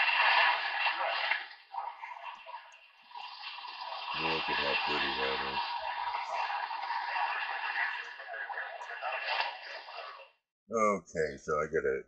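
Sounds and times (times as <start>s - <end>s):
faint garbled radio voices: 4.1s - 12.0s
radio static: 4.2s - 5.6s.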